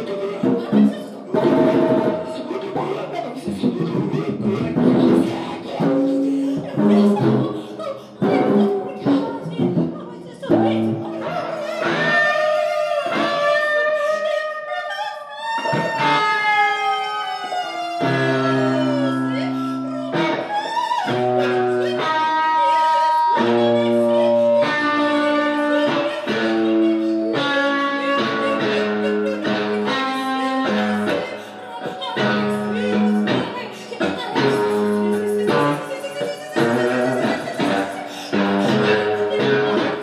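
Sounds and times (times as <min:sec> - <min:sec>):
electric guitar notes and chords: 0:00.0 - 0:14.6, 0:15.6 - 0:40.0
woman vocalising wordlessly: 0:00.0 - 0:40.0.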